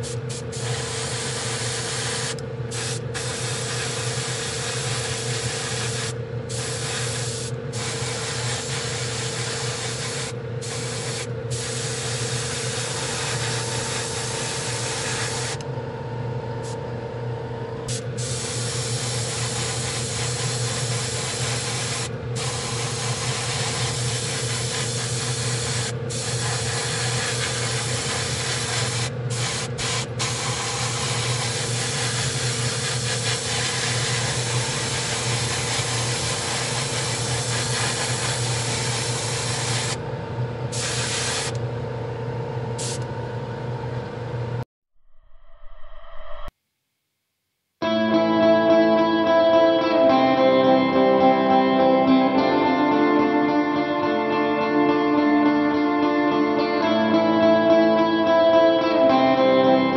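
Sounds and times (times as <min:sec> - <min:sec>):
airbrush spraying hiss: 0:00.0 - 0:15.6, 0:17.9 - 0:40.0, 0:40.7 - 0:41.6
steady machine hum: 0:00.0 - 0:44.6.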